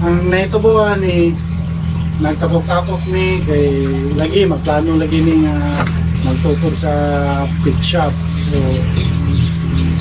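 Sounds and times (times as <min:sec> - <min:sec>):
man speaking: 0:00.0 - 0:01.4, 0:02.2 - 0:10.0
steady low hum: 0:00.0 - 0:10.0.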